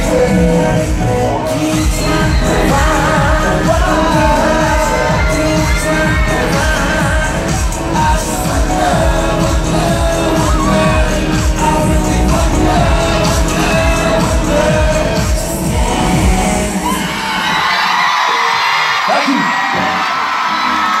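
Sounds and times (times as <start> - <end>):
crowd screaming and cheering: 0.0 - 21.0
pop dance music with pounding beat: 0.0 - 21.0.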